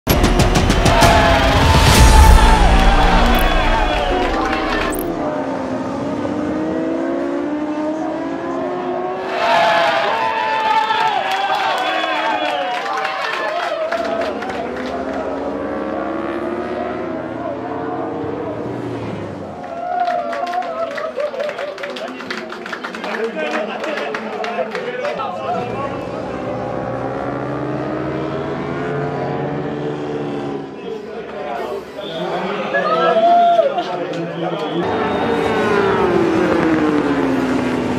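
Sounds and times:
group shouting and cheering: 0.1s - 5.4s, 9.2s - 15.5s, 19.5s - 22.1s, 32.1s - 36.7s
racing motorcycle engine revving: 0.1s - 10.2s, 14.0s - 19.6s, 25.3s - 31.0s, 34.8s - 37.9s
motorcycle engine at low revs: 35.5s - 37.9s.

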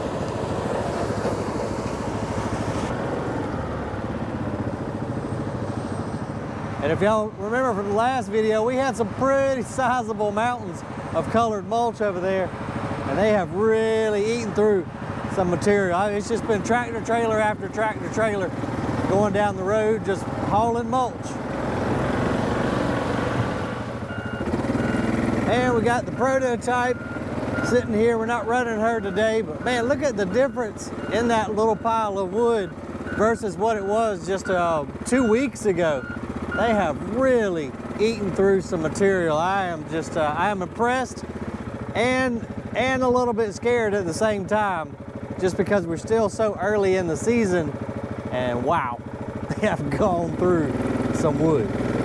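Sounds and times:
engine running with pulsing beat: 0.0s - 52.0s.

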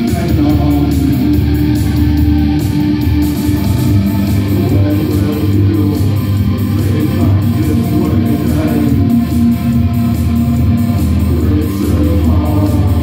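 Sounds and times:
rock band playing live: 0.0s - 13.0s.

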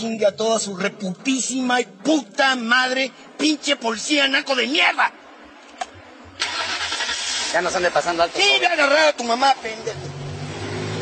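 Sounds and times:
steady vehicle noise: 0.0s - 11.0s.

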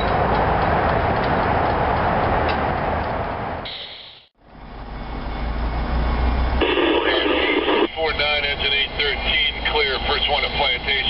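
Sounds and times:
low hum of traffic: 0.0s - 11.0s
radio squelch hiss: 6.6s - 11.0s
voice over radio: 6.6s - 11.0s.

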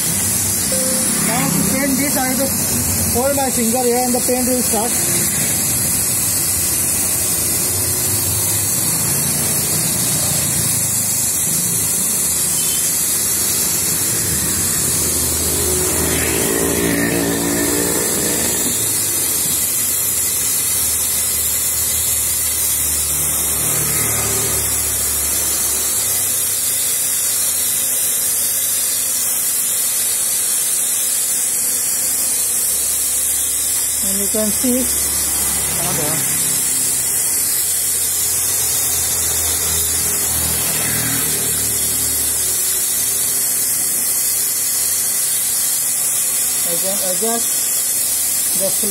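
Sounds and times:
hiss of paint spray: 0.0s - 48.9s
vacuum motor hum: 0.0s - 48.9s.

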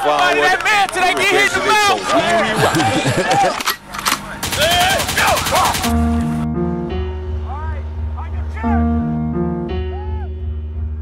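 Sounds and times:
people shouting: 4.4s - 6.0s
machine-gun fire: 4.4s - 6.3s.

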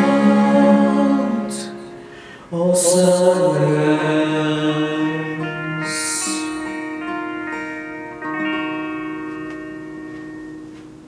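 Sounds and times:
guitar chord ringing: 0.0s - 11.0s.

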